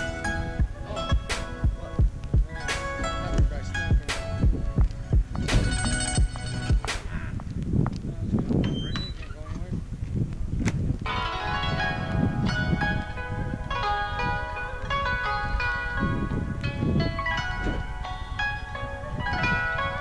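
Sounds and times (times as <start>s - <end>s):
pulsing bass beat: 0.0s - 7.6s.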